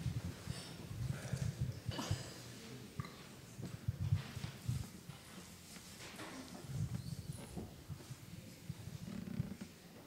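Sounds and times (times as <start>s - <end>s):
microphone handling bumps and rustles: 0.0s - 2.0s, 3.6s - 9.8s.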